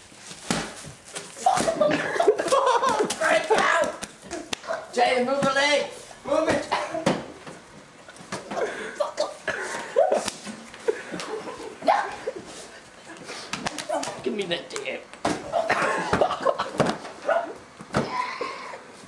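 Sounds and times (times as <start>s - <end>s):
young men laughing: 1.4s - 4.6s, 8.4s - 13.2s, 15.4s - 16.8s
young men shouting: 3.1s - 4.0s
slaps and thumps of bodies: 13.5s - 14.2s.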